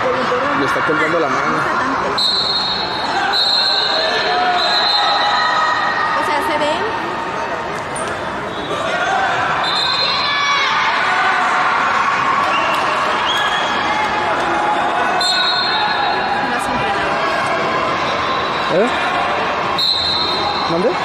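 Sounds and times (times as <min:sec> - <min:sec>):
echoing crowd chatter: 0:00.0 - 0:21.0.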